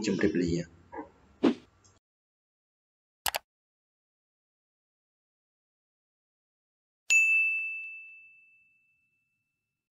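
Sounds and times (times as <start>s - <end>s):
bright bell ding: 7.1s - 9.6s.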